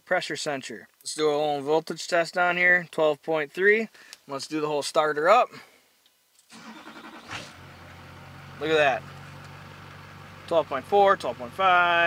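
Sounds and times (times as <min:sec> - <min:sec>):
engine starting and idling: 0:06.5 - 0:10.6.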